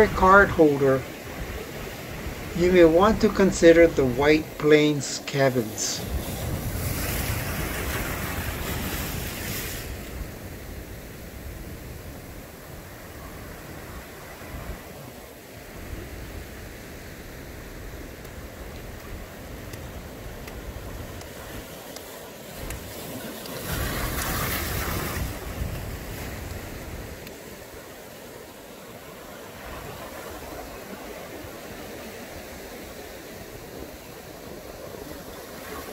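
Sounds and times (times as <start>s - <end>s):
surf breaking on rocks: 0.0s - 13.3s, 17.3s - 35.9s
wind: 0.0s - 35.9s.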